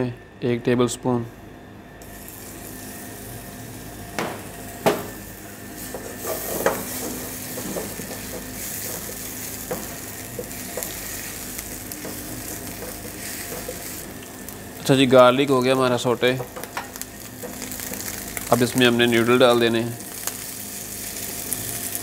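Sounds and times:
garlic sizzling in oil: 2.0 - 22.0
spatula knocking on pan: 4.2 - 5.2, 5.9 - 11.0, 12.0 - 13.9.

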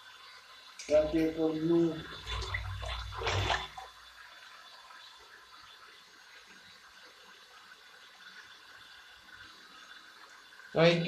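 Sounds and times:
faint steady hiss: 0.0 - 11.0
water rushing: 0.8 - 4.1.

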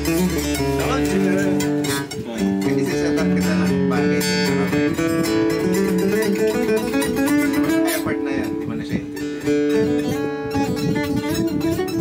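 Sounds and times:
fingerpicked acoustic guitar: 0.0 - 12.0.

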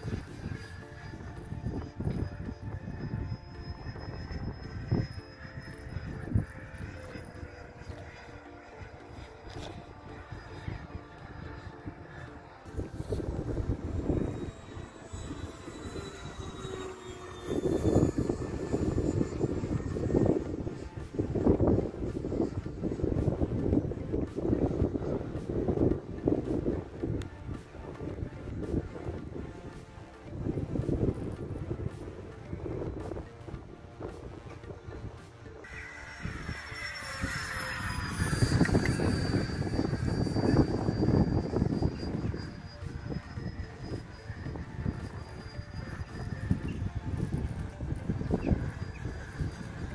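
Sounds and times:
model jet high whine: 0.0 - 49.9
wind on microphone: 0.0 - 49.9.

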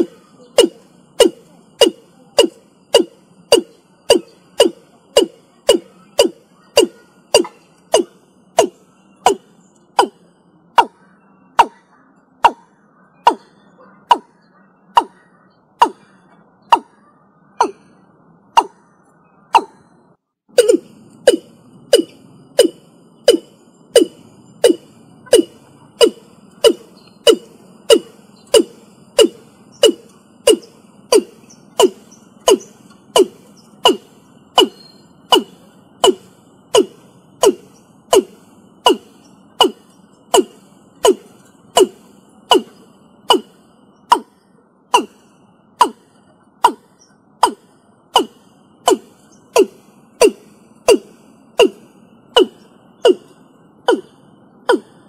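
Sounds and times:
bird calling low notes: 0.0 - 55.0.

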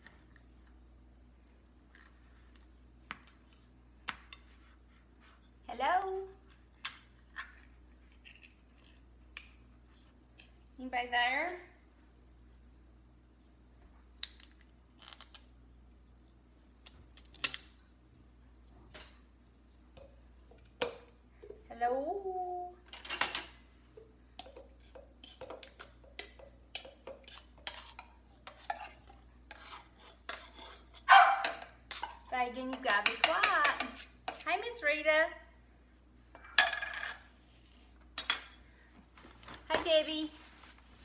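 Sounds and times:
dog barking and whining: 31.1 - 31.6.

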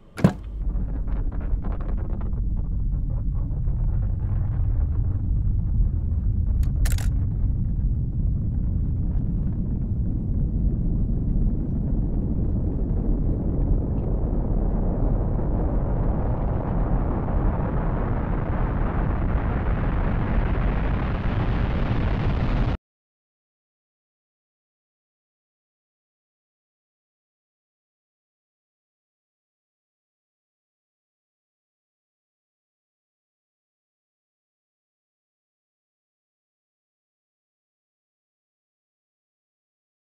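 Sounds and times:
deep continuous rumble: 0.0 - 22.8.

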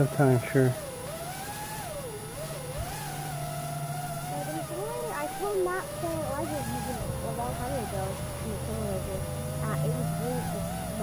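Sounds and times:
low steady hum: 0.0 - 11.0
quadcopter motors whining: 0.0 - 11.0.

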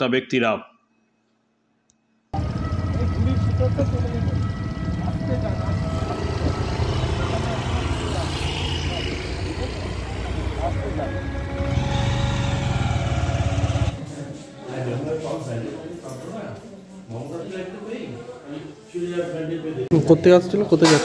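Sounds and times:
motorcycle engines idling: 2.4 - 14.1
road traffic: 2.4 - 14.2
indistinct voices: 2.4 - 14.9.

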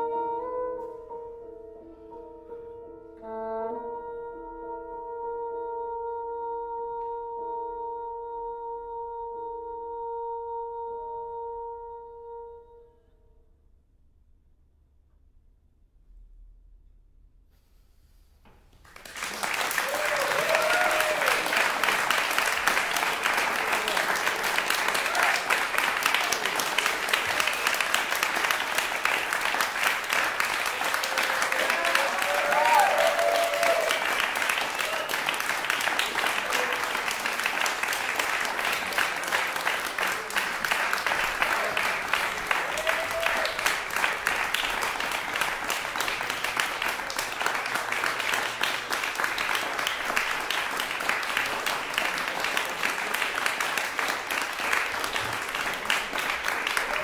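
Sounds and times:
audience applauding: 18.8 - 57.0.

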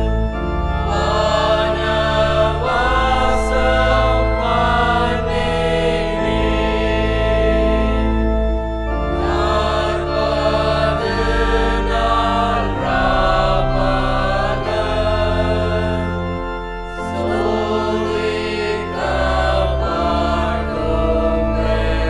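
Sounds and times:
congregation singing a hymn: 0.0 - 22.0
sustained accompanying chords: 0.0 - 22.0.

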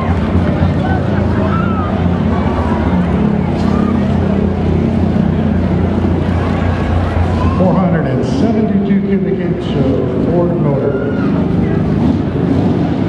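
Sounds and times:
truck engine idling: 0.0 - 13.0.

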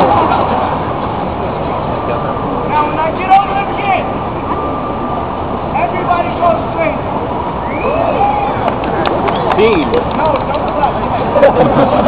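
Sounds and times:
crowd voices: 0.0 - 12.0
traffic rumble: 0.0 - 12.0.

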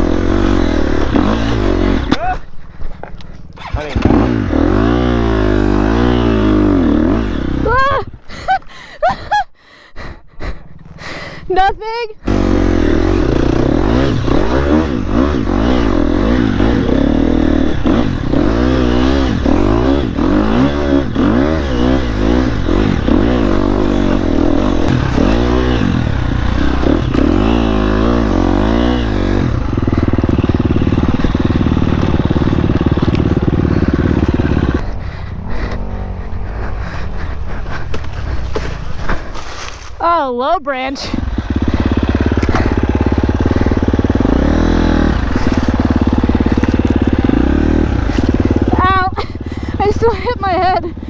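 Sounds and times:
dirt bike engine revving: 0.0 - 8.0, 12.1 - 51.0.

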